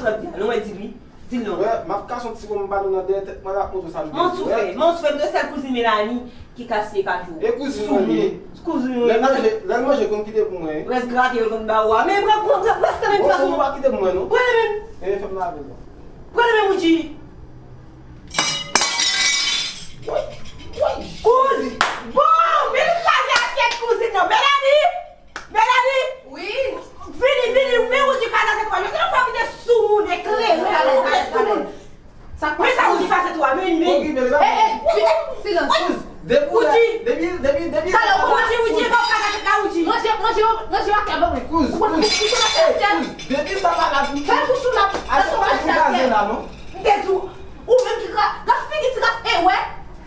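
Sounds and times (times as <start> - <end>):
dish smashing on hard floor: 18.3 - 20.8, 42.0 - 45.2
shards clinking and scattering: 18.3 - 21.4, 42.0 - 45.8, 46.4 - 47.5.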